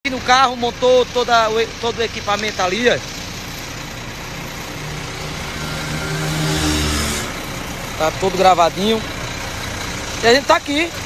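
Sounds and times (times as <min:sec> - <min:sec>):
vehicle passing by: 0:02.9 - 0:10.3.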